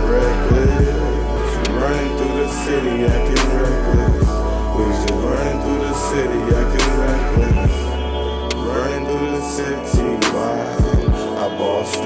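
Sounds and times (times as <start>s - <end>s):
deep bass note: 0.0s - 9.2s
held synth chords: 0.0s - 12.0s.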